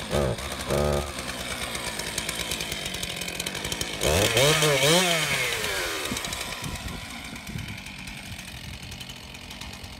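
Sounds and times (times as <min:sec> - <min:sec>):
chainsaw idling: 0:00.0 - 0:09.9
chainsaw revving: 0:00.0 - 0:09.9.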